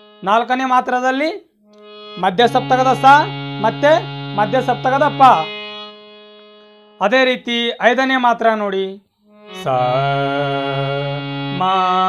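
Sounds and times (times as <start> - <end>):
harmonium reed drone: 0.0 - 0.9, 1.6 - 7.7, 9.3 - 12.0
person singing note syllables: 9.5 - 12.0.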